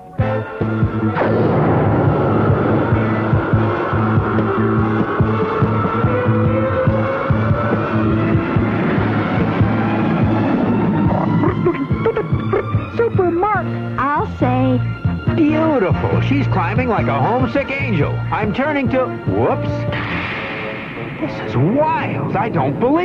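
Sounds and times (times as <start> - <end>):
background music: 0.0 - 23.0
rising whine: 0.8 - 13.8
cartoon jet engines roaring: 0.8 - 14.0, 19.9 - 23.0.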